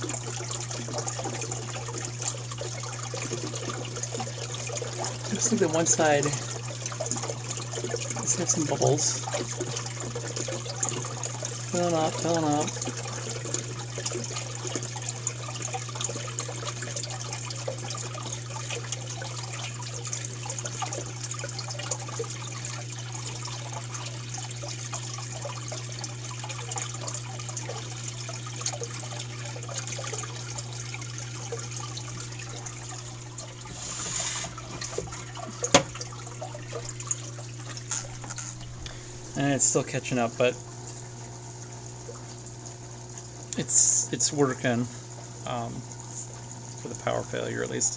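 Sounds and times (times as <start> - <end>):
steady low hum: 0.0 - 47.9
water running and trickling: 0.0 - 47.9.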